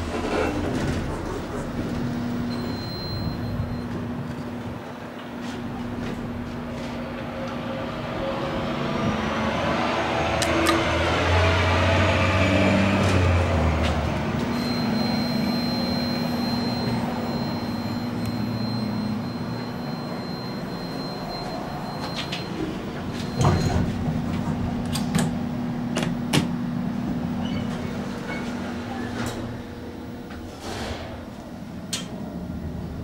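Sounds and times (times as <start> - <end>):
elevator cab rumbling and rattling: 0.0 - 9.2, 13.0 - 33.0
elevator machinery hum: 0.0 - 33.0
thin high whine: 14.4 - 23.9.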